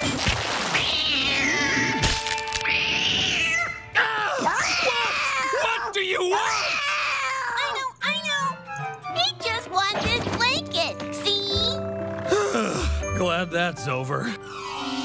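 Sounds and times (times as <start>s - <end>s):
cartoon cat yowling: 2.9s - 7.8s.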